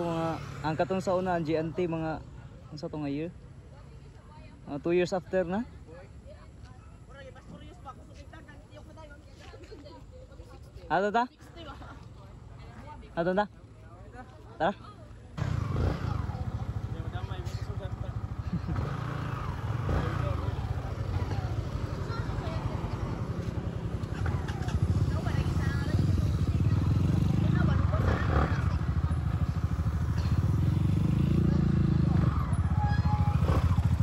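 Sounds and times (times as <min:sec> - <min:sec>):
road and wind noise: 0:00.0 - 0:34.0
motorbike engine accelerating: 0:15.4 - 0:34.0
vehicle passing: 0:15.4 - 0:34.0.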